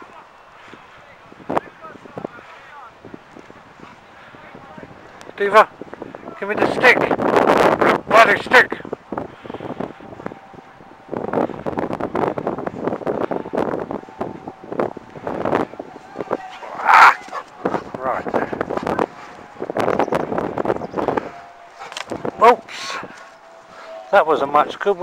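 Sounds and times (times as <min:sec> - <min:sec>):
person talking: 0:08.1 - 0:08.9.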